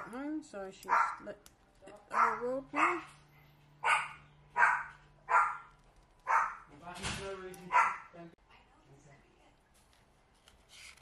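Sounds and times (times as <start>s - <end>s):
dog barking: 0.8s - 1.3s, 2.1s - 3.2s, 3.8s - 6.7s, 7.7s - 8.2s.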